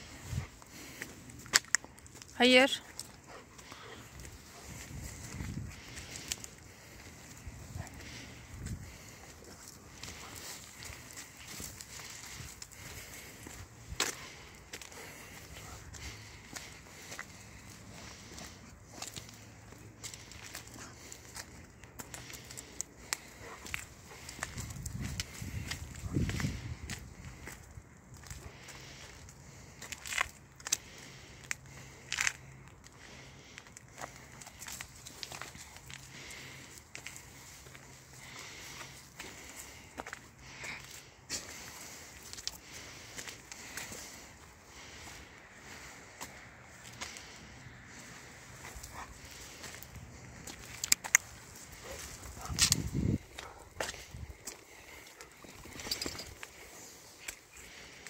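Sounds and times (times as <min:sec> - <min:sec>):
footsteps crunching dry leaves: 0:00.0 - 0:58.0.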